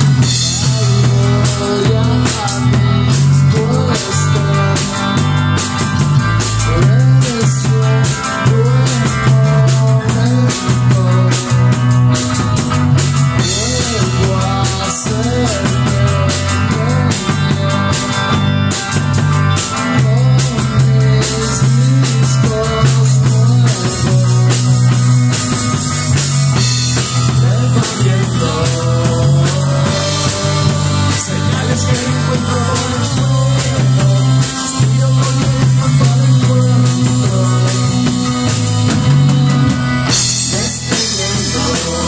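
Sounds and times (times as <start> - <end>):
bass guitar: 0.0 - 42.0
drums and cymbals: 0.0 - 42.0
electric guitar bending notes: 0.0 - 42.0.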